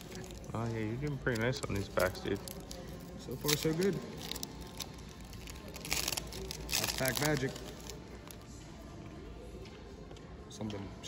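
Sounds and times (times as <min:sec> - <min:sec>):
foil wrapper crinkling: 0:00.0 - 0:08.4
wrapper tearing open crackle: 0:01.1 - 0:08.0.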